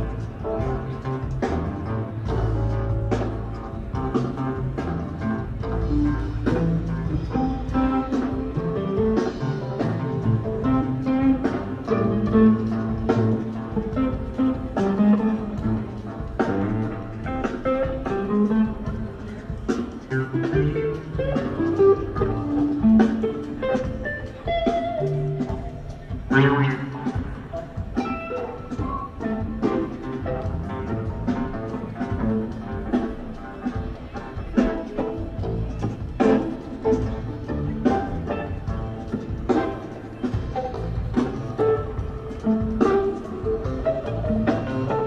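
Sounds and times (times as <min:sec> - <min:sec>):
bass guitar: 0:00.0 - 0:45.0
electric guitar: 0:00.0 - 0:45.0
steady drums: 0:00.0 - 0:45.0.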